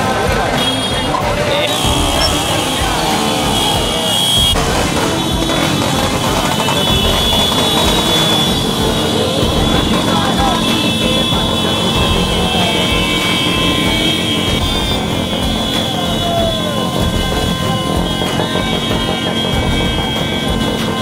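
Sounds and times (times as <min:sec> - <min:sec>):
crowd voices: 0:00.0 - 0:21.0
motorcycle engines running: 0:00.0 - 0:21.0.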